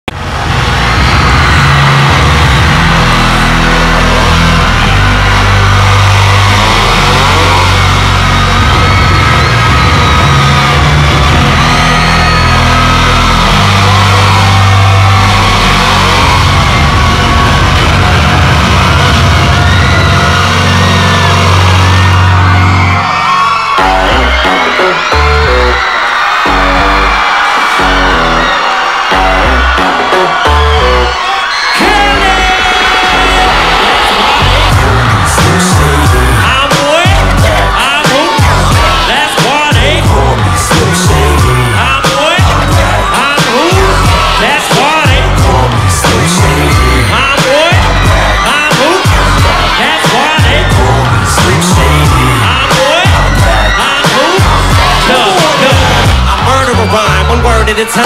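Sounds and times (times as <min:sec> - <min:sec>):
crowd screaming and whooping: 0:00.0 - 0:58.0
heavy bass chords: 0:00.0 - 0:58.0
hip-hop beat: 0:00.1 - 0:58.0.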